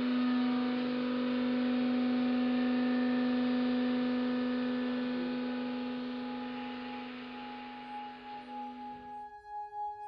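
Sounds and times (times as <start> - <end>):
low droning tone: 0.0 - 9.9.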